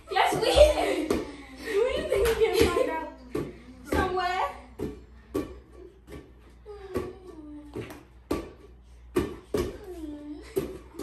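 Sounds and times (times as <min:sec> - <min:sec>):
ball slapping against hands: 0:02.0 - 0:09.9.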